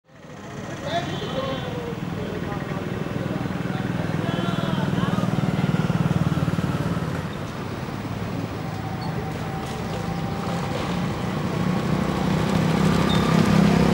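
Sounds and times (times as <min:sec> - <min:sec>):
motorcycle engine running: 0:00.1 - 0:13.9
background voices: 0:00.2 - 0:13.9.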